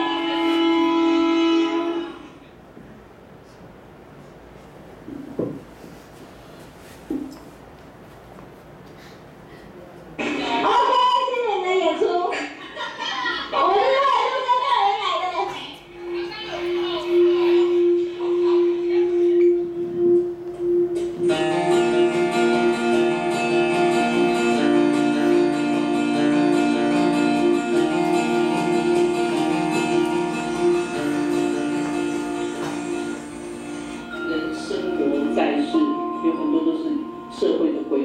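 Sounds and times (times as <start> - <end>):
steady speaker hum: 0.0 - 38.0
faint film voices: 9.0 - 20.3.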